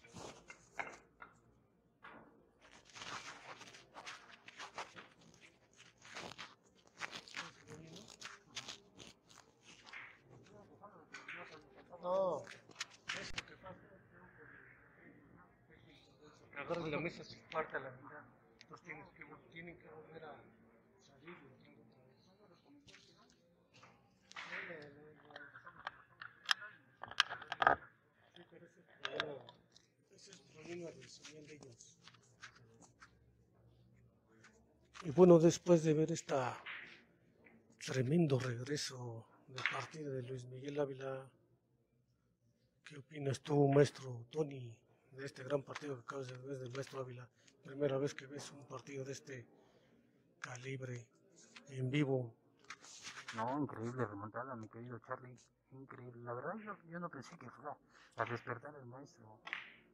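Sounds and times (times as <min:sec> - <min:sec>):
shuffling noises: 0:00.0 - 0:01.1, 0:02.6 - 0:10.6, 0:29.0 - 0:33.2, 0:52.7 - 0:53.6
billiard balls clicking: 0:25.2 - 0:27.9.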